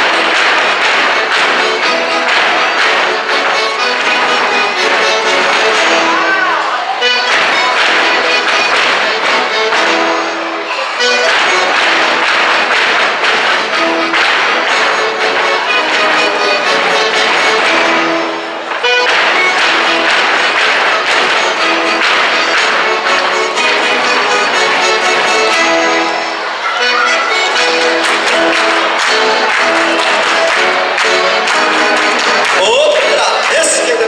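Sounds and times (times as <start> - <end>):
folk dance music with accordion: 0.0 - 34.0.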